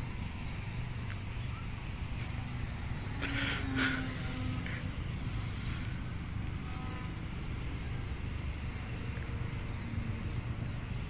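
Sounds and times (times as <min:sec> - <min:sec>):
model airplane motor whine: 0:00.0 - 0:11.0
steady low rumble: 0:00.0 - 0:11.0.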